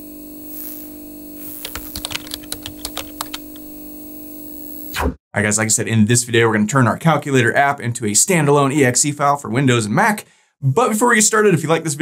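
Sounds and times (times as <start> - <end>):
keyboard key clicks: 1.7 - 3.6.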